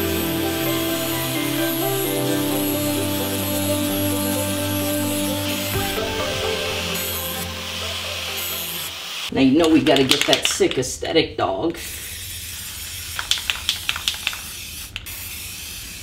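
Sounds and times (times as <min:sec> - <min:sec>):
angle grinder grinding steel: 0:00.0 - 0:09.3
background music: 0:00.0 - 0:09.3.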